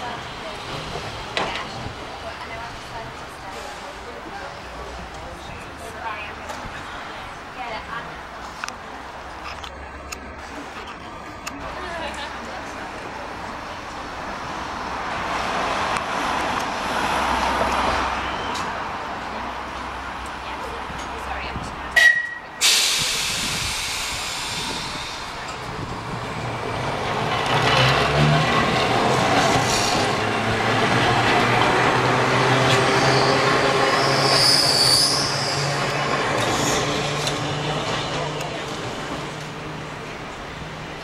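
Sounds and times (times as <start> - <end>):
indistinct voices: 0.0 - 41.0
street noise: 0.0 - 41.0.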